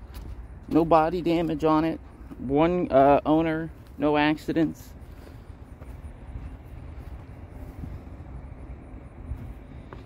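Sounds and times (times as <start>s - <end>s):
low outdoor background rumble: 0.0s - 10.0s.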